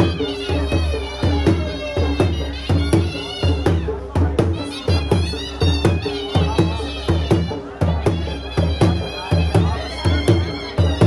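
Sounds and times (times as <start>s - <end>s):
driving drum beats: 0.0s - 11.0s.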